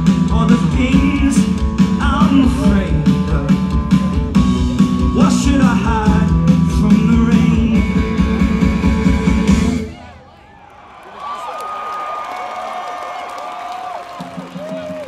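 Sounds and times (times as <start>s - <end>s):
live rock band playing: 0.0s - 10.0s
crowd cheering and whistling: 9.7s - 15.0s.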